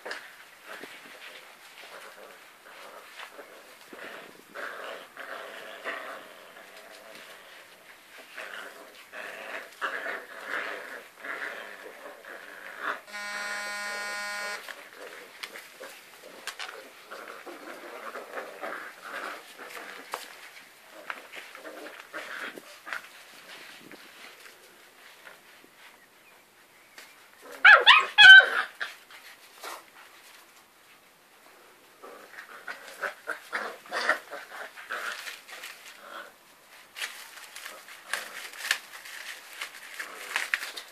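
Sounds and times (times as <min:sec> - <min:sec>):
flat buzzing tone: 0:13.1 - 0:14.7
puppies making short vocal sounds: 0:13.1 - 0:14.8
puppies scuffling over towel: 0:32.3 - 0:40.9.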